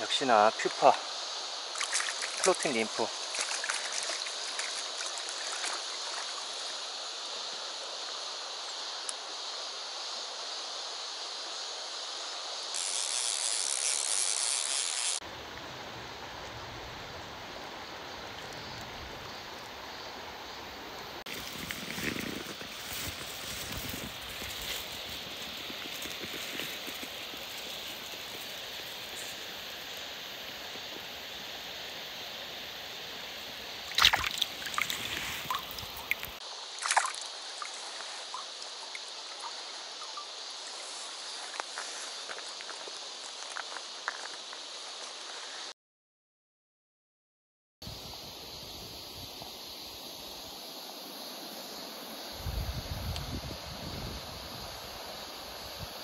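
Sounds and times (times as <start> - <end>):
shallow river running: 0.0 - 12.1, 15.3 - 45.3
water sloshing in landing net: 1.8 - 6.5, 33.9 - 37.7.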